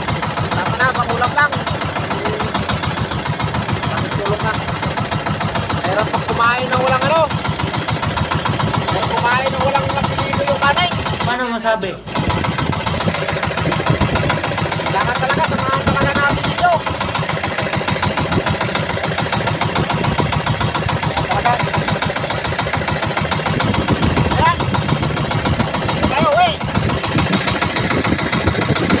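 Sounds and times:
boat engine running: 0:00.0 - 0:29.0.

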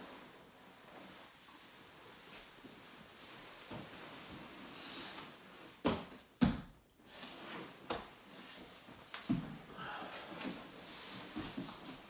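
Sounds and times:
bodies thumping on foam mat: 0:05.8 - 0:06.8.

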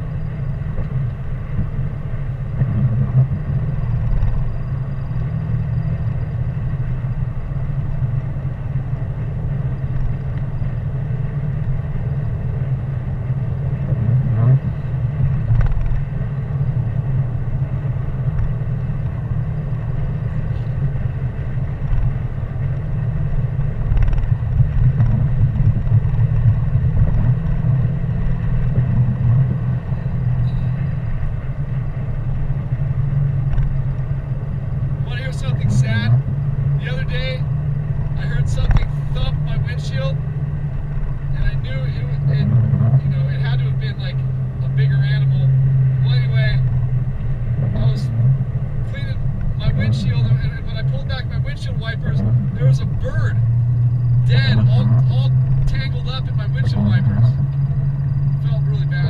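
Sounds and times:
car engine and tyre drone: 0:00.0 - 0:59.0.

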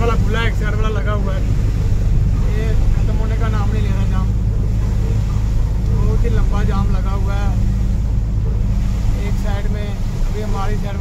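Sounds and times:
truck engine drone: 0:00.0 - 0:11.0
voices talking: 0:00.0 - 0:11.0.

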